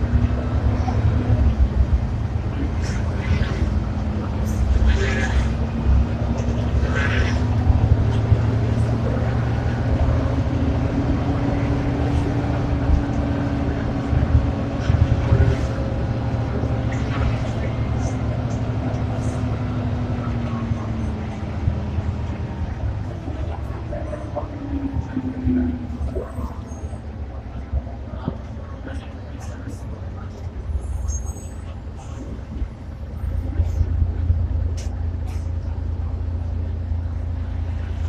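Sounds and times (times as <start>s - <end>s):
bus diesel engine drone: 0.0s - 38.0s.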